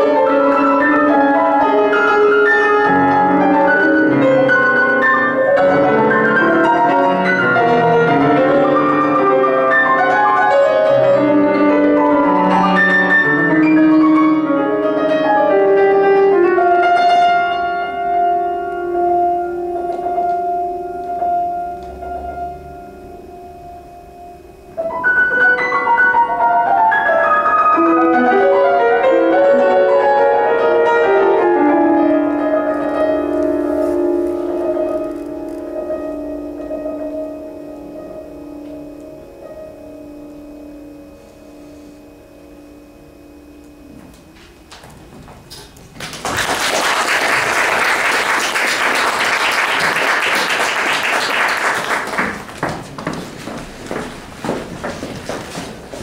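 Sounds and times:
classical piano piece: 0.0s - 56.0s.

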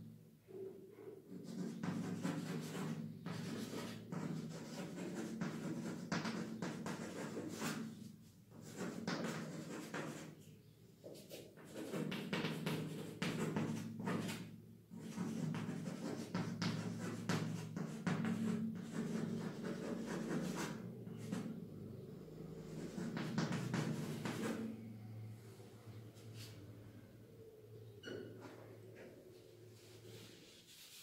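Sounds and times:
chalk scratching on blackboard: 1.3s - 10.4s, 11.0s - 21.5s, 22.7s - 24.7s.

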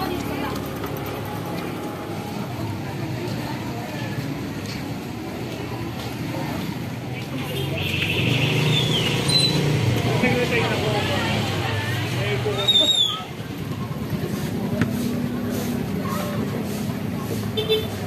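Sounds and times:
indistinct voices: 0.0s - 18.0s
motor vehicle running: 0.0s - 18.0s.

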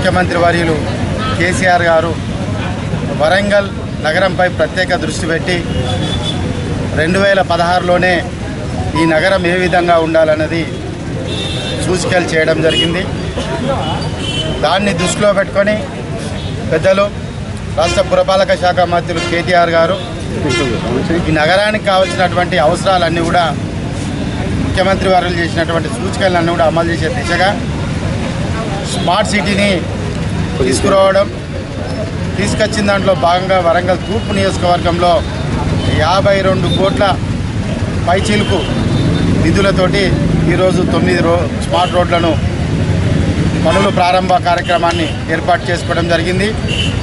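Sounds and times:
outdoor background noise: 0.0s - 47.0s
man speaking emphatically: 8.9s - 10.8s, 11.8s - 13.9s, 14.5s - 15.8s, 17.8s - 23.6s, 24.8s - 27.6s, 28.8s - 31.4s, 32.3s - 37.2s, 38.0s - 38.8s, 39.4s - 42.5s, 43.6s - 46.6s.

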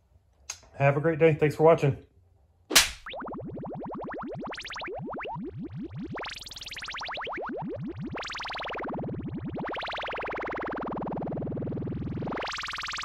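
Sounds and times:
synthesizer rising pitch sweeps: 3.0s - 13.0s.

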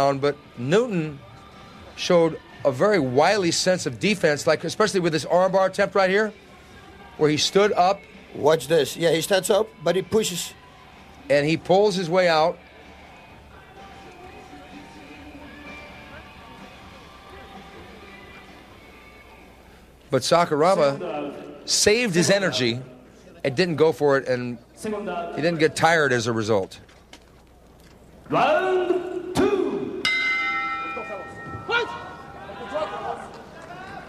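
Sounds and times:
faint background music: 0.0s - 34.0s
faint voices: 13.0s - 20.0s, 30.9s - 34.0s
ring bell ringing: 30.0s - 33.3s
announcer calling out: 30.8s - 33.3s.

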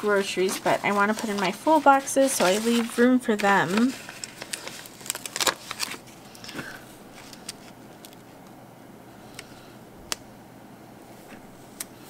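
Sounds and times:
stickers peeling crackly clicks: 0.6s - 6.6s.

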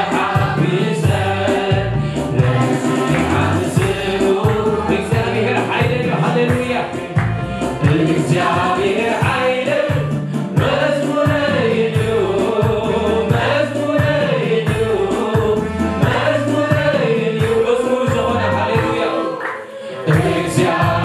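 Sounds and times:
keyboard playing chords and bass: 0.0s - 19.4s, 20.1s - 21.0s
choir singing a hymn: 0.0s - 21.0s.

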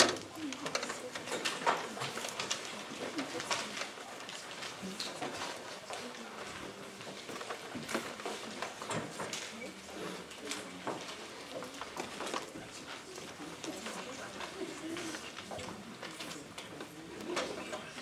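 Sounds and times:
murmur of voices: 0.0s - 18.0s.

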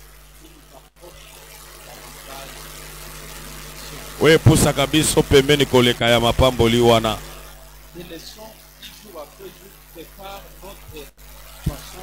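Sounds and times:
low electrical hum: 0.0s - 12.0s
microphone hiss: 0.0s - 12.0s.

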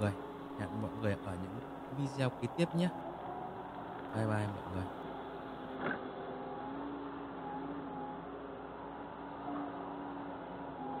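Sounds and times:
excavator engine drone: 0.0s - 11.0s.

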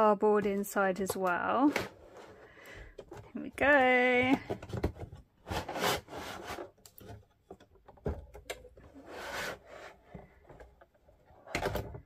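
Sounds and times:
scraping against cardboard: 4.5s - 7.5s, 8.8s - 10.7s.

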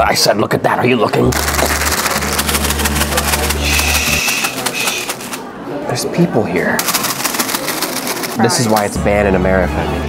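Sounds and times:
paper bag of fries shaken: 1.3s - 5.4s, 6.8s - 9.0s.

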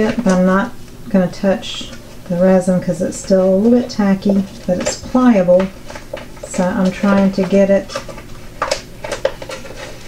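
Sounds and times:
resin sheet clicking and crinkling: 0.0s - 10.0s.

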